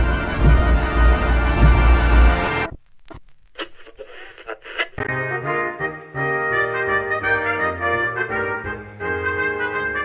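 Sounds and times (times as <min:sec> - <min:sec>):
dense music with pulsing bass: 0:00.0 - 0:02.7.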